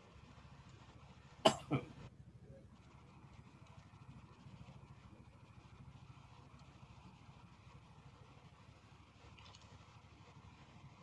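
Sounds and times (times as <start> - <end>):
person coughing: 1.5 - 1.9.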